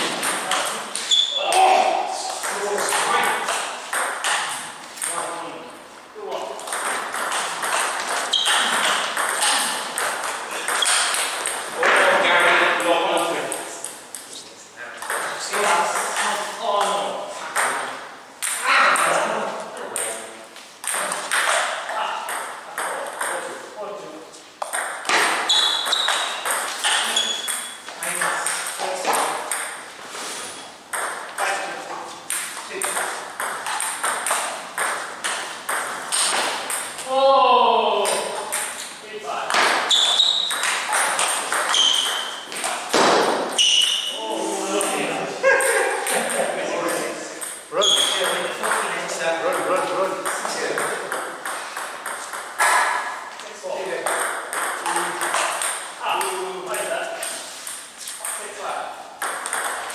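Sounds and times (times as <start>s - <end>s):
short high squeaks: 1.0s - 1.6s, 8.2s - 9.7s, 10.7s - 11.2s, 25.4s - 27.9s, 39.8s - 41.0s, 41.6s - 42.5s, 43.5s - 44.2s, 47.8s - 48.3s
table tennis ball clicking: 40.4s - 42.2s.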